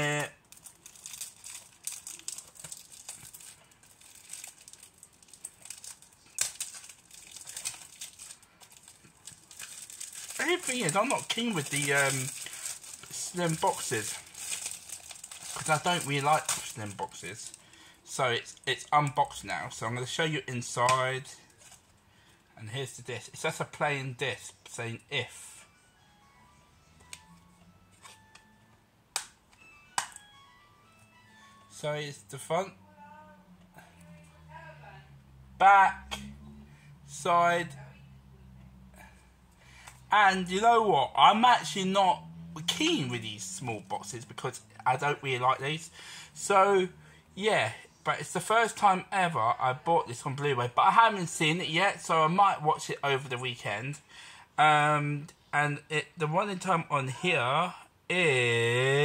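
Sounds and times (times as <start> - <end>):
plastic wrap crackling: 0.0 - 17.7
faint music: 0.0 - 59.0.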